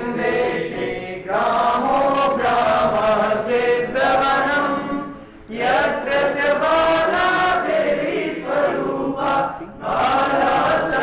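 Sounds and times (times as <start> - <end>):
voices chanting a slow melody: 0.0 - 11.0.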